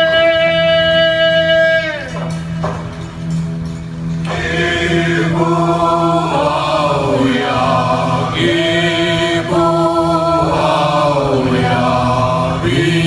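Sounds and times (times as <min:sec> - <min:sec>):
steady low drone: 0:00.0 - 0:13.0
voices chanting in held notes: 0:04.2 - 0:13.0.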